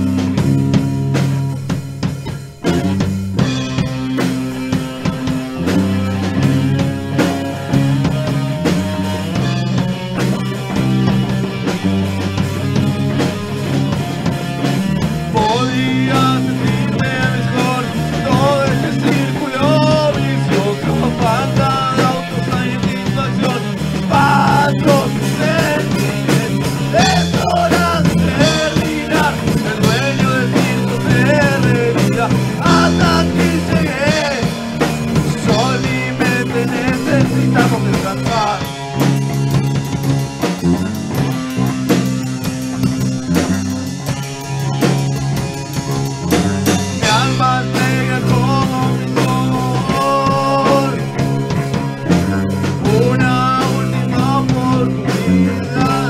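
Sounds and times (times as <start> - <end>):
bass guitar: 0.0 - 56.0
drum kit: 0.0 - 56.0
high bending melodic line: 0.0 - 56.0
loud rock band playing: 0.0 - 56.0.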